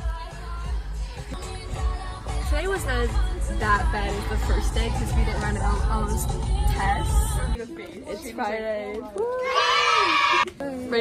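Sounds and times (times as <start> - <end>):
girl yelling excitedly: 9.4 - 10.5.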